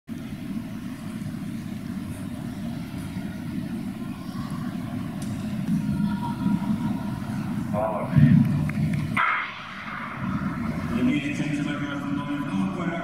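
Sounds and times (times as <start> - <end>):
sports hall low rumble: 0.1 - 13.0.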